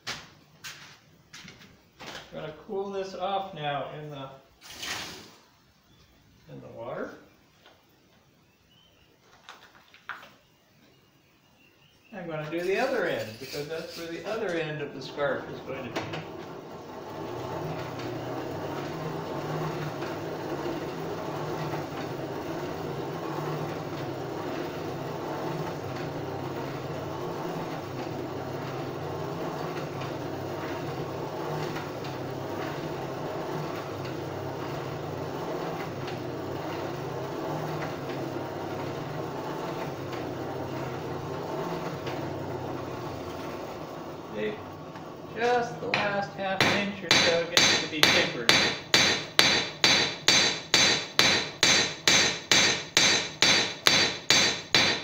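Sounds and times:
forge air blower running: 12.6 - 55.0.

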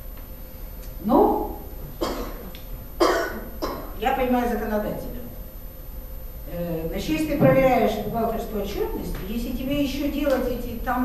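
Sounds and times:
woman coughing into microphone: 2.0 - 4.0.

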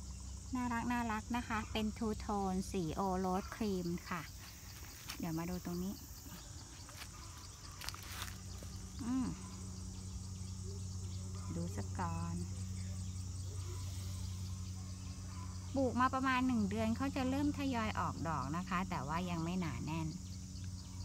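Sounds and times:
insects chirring: 0.0 - 21.0
low steady hum: 0.0 - 21.0.

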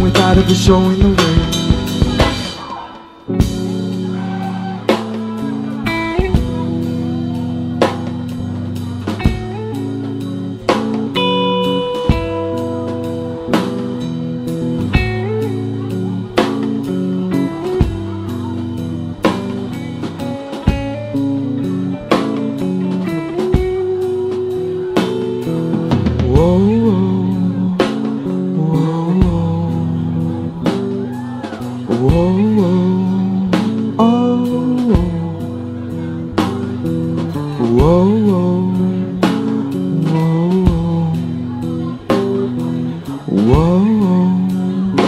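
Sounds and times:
rock band playing: 0.0 - 45.0.

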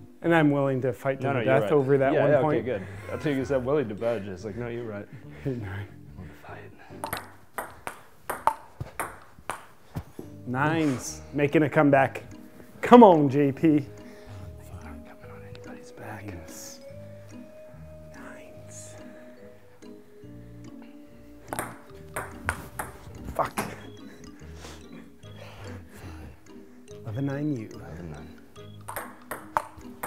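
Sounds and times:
background music sustained tones: 0.0 - 8.4, 9.0 - 30.0
ping pong ball clicks: 7.0 - 9.7, 21.5 - 23.1, 28.7 - 30.0.

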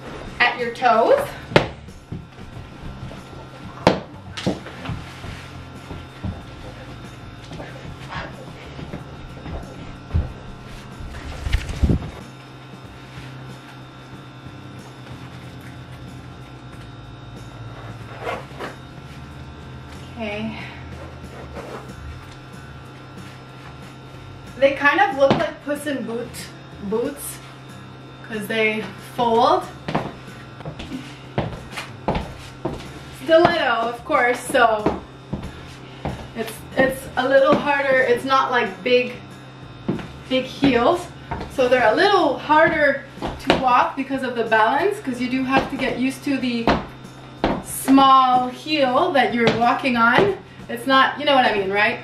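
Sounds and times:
heel footsteps on wooden floor: 1.3 - 12.2, 29.8 - 33.7, 34.4 - 37.7, 39.8 - 41.7, 42.6 - 43.8, 46.6 - 47.7
boots rustling and knocking: 1.6 - 12.3, 29.8 - 37.8, 46.6 - 48.0.

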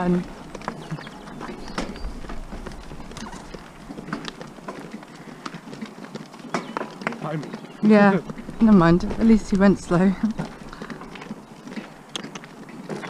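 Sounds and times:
carriage wheels crunching: 0.0 - 13.0
horse hooves clip-clopping on gravel: 0.0 - 13.0.

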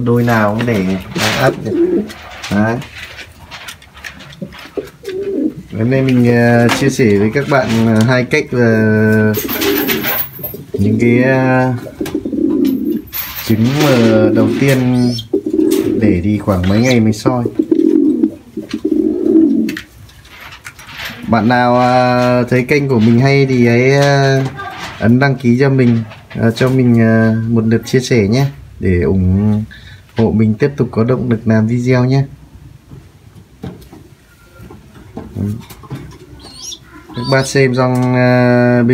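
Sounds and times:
pigeons rustling: 0.2 - 27.0, 33.8 - 38.2
pigeon low calls: 4.6 - 5.7, 9.4 - 11.0, 11.8 - 13.2, 14.0 - 16.1, 17.4 - 19.9, 36.1 - 37.7.

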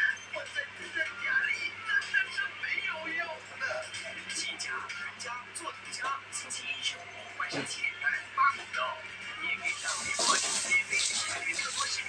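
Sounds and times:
television music and voices: 0.0 - 12.0.

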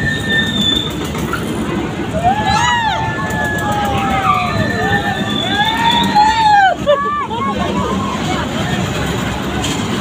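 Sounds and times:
train rumbling: 0.0 - 10.0
wheels squealing on rails: 0.0 - 10.0.

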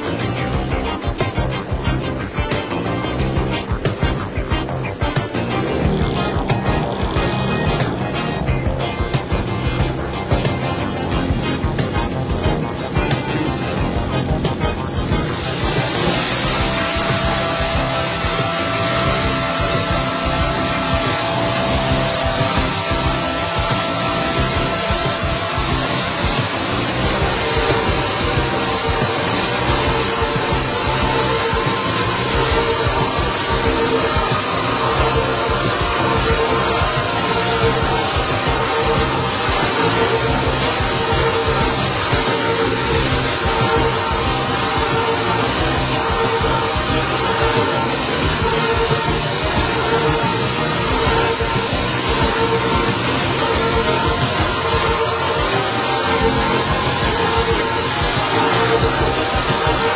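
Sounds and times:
background music: 0.0 - 59.9
held machine tones: 0.0 - 59.9
milling machine cutting metal: 0.0 - 59.9.

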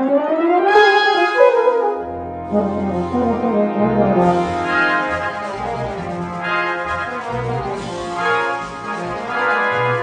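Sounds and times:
euphonium melody: 0.0 - 10.0
sustained deep bass note: 2.0 - 6.5.

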